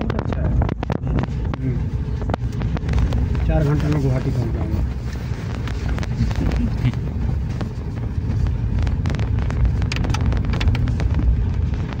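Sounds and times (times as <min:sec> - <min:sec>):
vehicle engine and road rumble: 0:00.0 - 0:12.0
wind buffeting microphone: 0:00.0 - 0:12.0.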